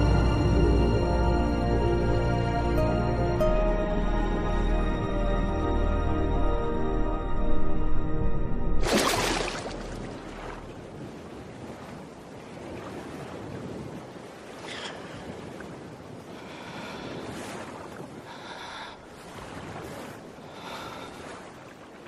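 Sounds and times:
rushing river water: 8.8 - 22.0
wind buffeting microphone: 10.0 - 22.0.

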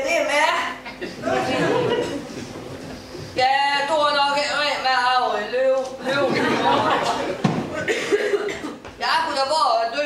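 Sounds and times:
person coughing: 7.7 - 8.8.

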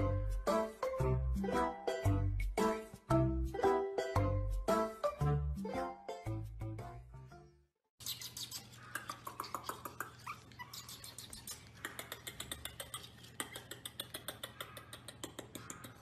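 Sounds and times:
puppies scratching and clicking: 8.1 - 16.0.

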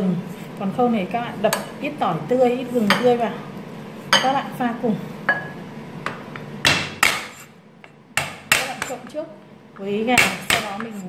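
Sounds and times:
knife chopping on wooden board: 6.6 - 7.5, 8.2 - 9.1, 10.2 - 11.0.

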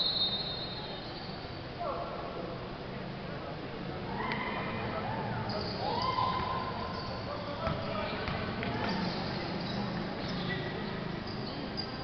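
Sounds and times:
basketball bouncing on court: 7.6 - 10.4.

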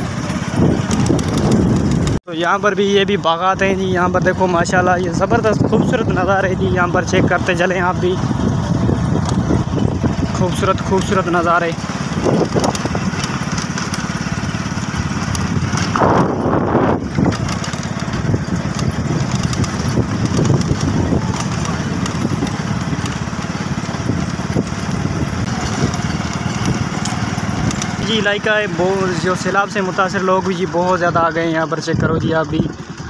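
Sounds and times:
wind noise on microphone: 0.0 - 2.2, 3.5 - 11.2, 12.0 - 28.2
motorcycle engine running: 0.0 - 33.0.

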